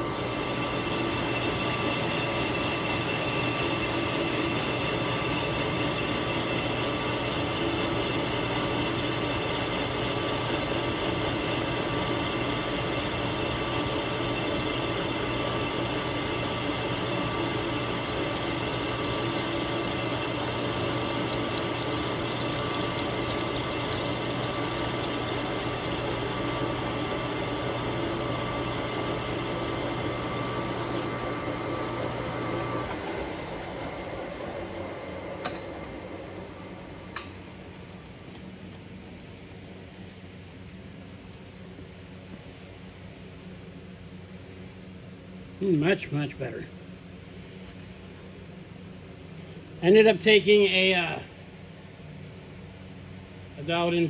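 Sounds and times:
metal lathe humming and whining: 0.0s - 36.1s.

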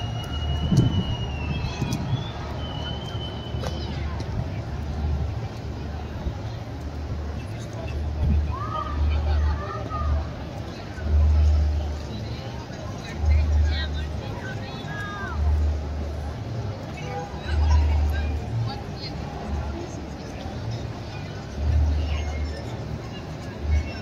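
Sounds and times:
deep rumble on microphone: 0.0s - 5.5s
crowd chatter: 0.0s - 24.0s.

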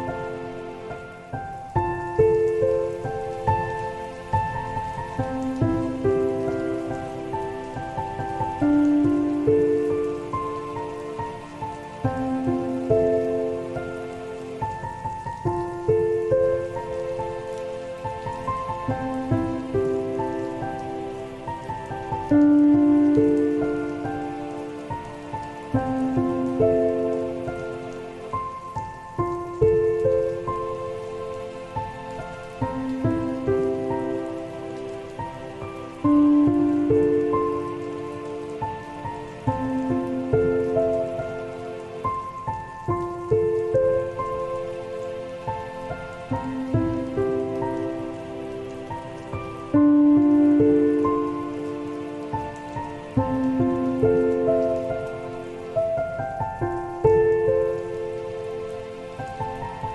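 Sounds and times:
falling rain: 0.0s - 59.9s
soft solo piano: 0.0s - 59.9s.

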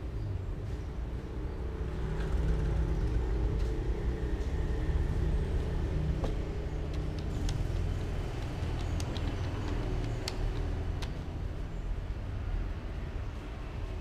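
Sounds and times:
road traffic engine rumble: 0.0s - 14.0s
sharp light clicks: 6.9s - 11.2s.

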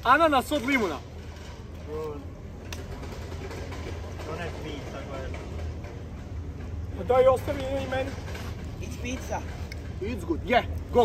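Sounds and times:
low city hum: 0.0s - 11.0s.

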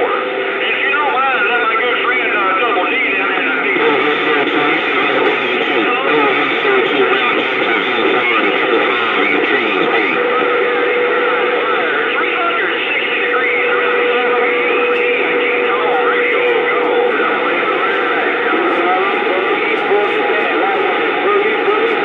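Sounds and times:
garbled radio voices: 0.0s - 22.0s
radio static: 0.0s - 22.0s.

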